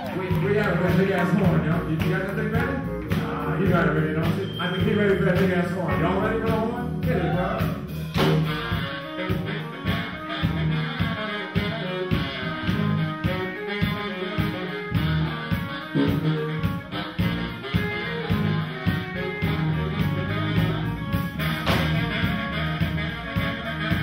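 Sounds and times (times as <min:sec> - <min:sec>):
baritone saxophone: 0:00.0 - 0:24.0
drums keeping a steady beat: 0:00.0 - 0:24.0
electric bass: 0:00.0 - 0:24.0.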